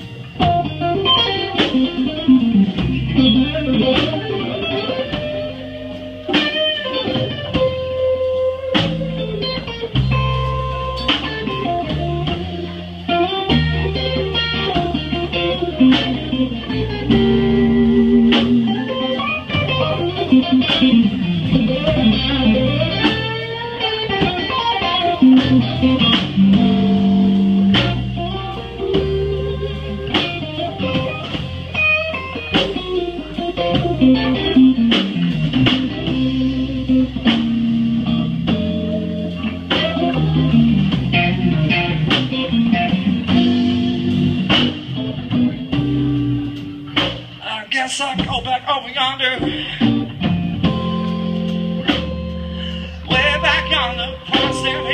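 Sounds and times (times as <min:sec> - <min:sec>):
bass guitar: 0:00.0 - 0:54.9
drums: 0:00.0 - 0:54.9
electric guitar lead: 0:00.0 - 0:54.9.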